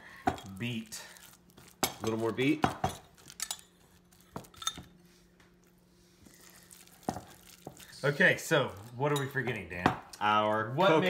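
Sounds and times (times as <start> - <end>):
hands mixing food in a bowl: 0.0 - 11.0.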